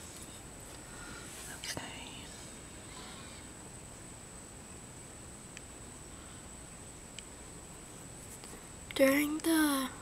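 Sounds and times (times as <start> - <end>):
faint whispered voice: 1.4 - 3.4.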